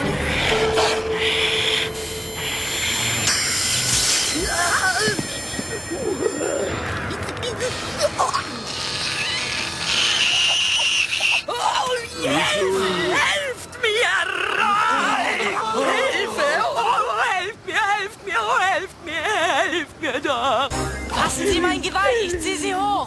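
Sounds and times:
background music: 0.0 - 10.5, 20.7 - 23.0
strained cries and grunts: 4.2 - 20.7.

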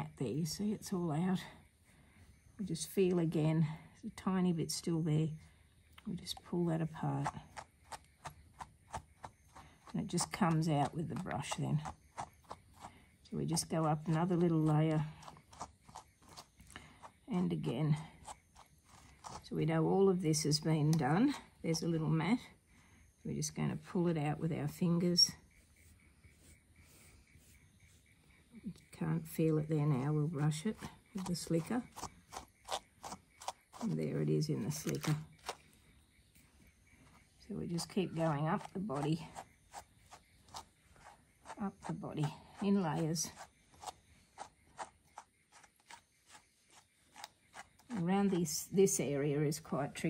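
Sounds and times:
brush scratching through fur: 7.0 - 19.4, 25.6 - 28.1, 29.9 - 35.7, 36.4 - 48.6
brush stroking through fur: 37.0 - 48.5.

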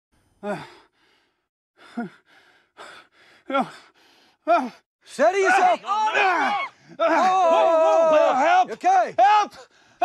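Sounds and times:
rasping breaths: 0.2 - 4.9.

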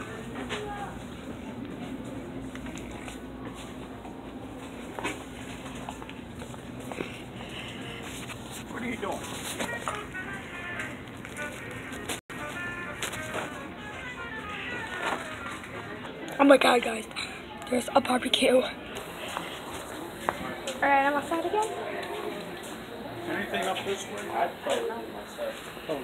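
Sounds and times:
background chatter: 0.0 - 26.0
music playing: 7.4 - 20.8.

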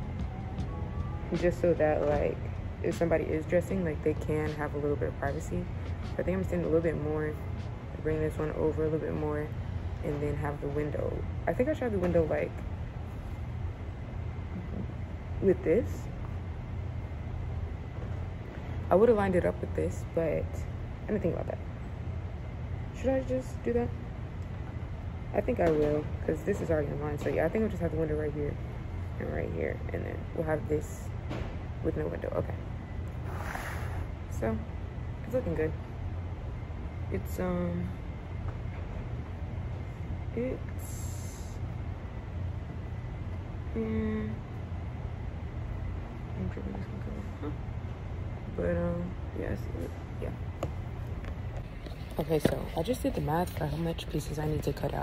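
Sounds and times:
low room hum: 0.0 - 55.0
ventilation rumble: 0.0 - 55.0.

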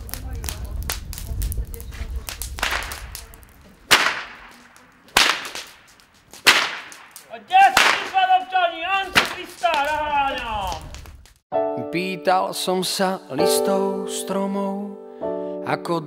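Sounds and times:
low rumble: 0.0 - 3.9
whip cracks: 2.3 - 8.4, 9.0 - 11.2
whip lash swish: 2.4 - 3.0, 3.9 - 7.1.

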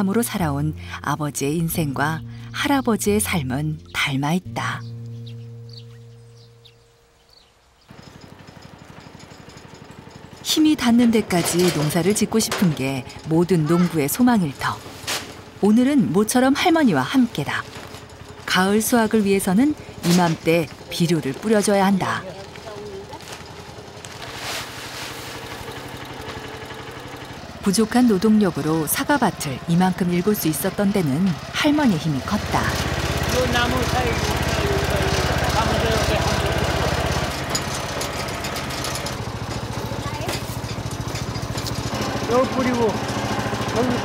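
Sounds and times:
utility vehicle engine puttering: 0.0 - 44.0
small birds chirping: 1.4 - 8.0
background music chord: 1.8 - 7.2
granular fertilizer pouring from sack: 22.5 - 27.2.

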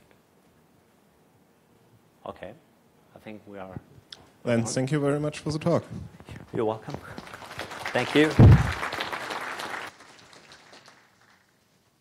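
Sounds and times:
audience applause: 6.9 - 11.8.

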